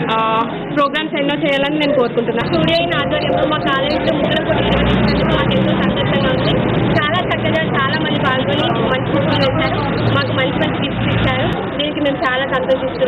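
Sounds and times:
woman speaking into a microphone: 0.0s - 13.0s.

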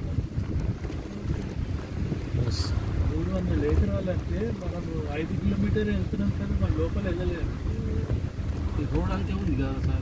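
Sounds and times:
wind noise on microphone: 0.0s - 10.0s.

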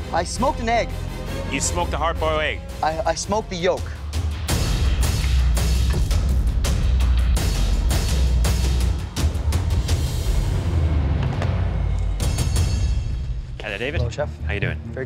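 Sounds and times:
dramatic background music: 0.0s - 15.0s.

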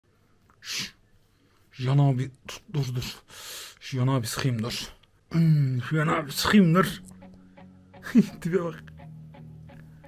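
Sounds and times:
man speaking: 1.7s - 7.3s, 7.9s - 9.1s.

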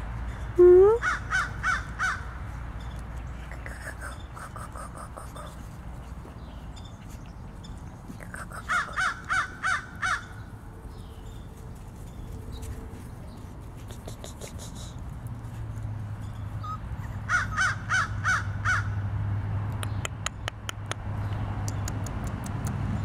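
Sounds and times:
crow cawing: 8.7s - 10.3s, 17.3s - 18.9s.

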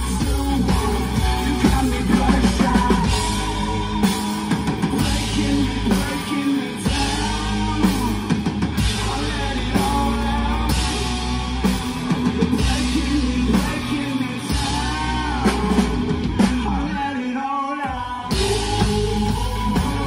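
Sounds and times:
bass guitar: 0.0s - 17.1s, 18.0s - 20.0s
drum kit: 0.0s - 17.1s, 17.8s - 20.0s
electric guitars: 0.0s - 17.3s, 17.9s - 20.0s.

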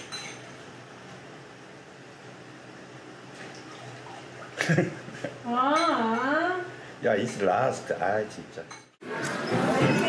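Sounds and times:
dishes clinking: 0.0s - 0.5s, 5.7s - 6.3s, 7.2s - 7.6s, 8.6s - 10.0s
running water: 3.3s - 4.9s.

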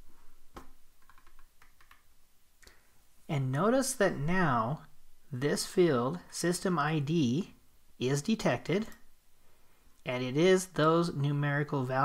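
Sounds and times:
keyboard and mouse clicks: 0.5s - 2.8s.

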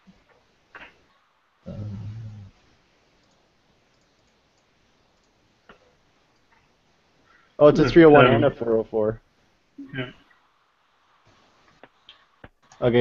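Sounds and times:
faint click: 3.2s - 6.7s.

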